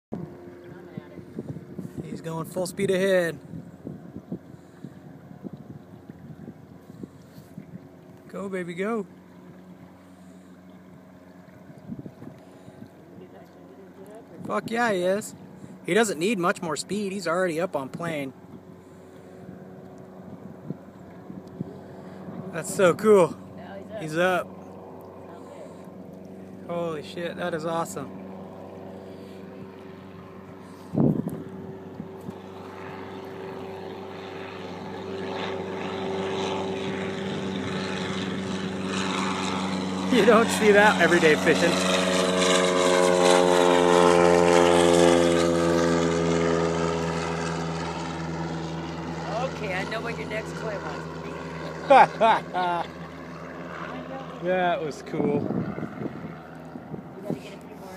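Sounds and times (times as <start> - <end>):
engine droning: 0.1 - 57.9.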